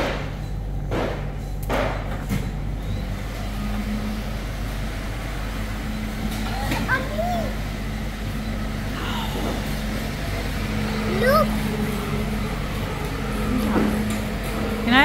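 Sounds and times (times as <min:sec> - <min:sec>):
refrigeration and ventilation hum: 0:00.0 - 0:15.0
child's vocal sounds: 0:11.0 - 0:11.7.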